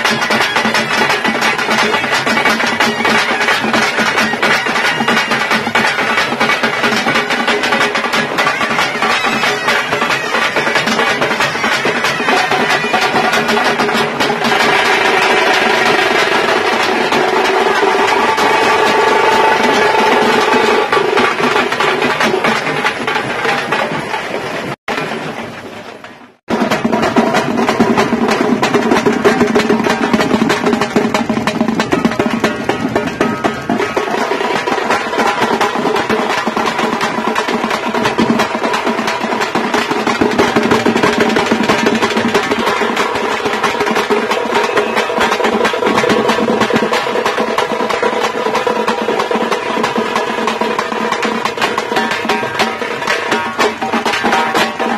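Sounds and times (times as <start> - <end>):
frame drums beaten fast: 0.0 - 54.9.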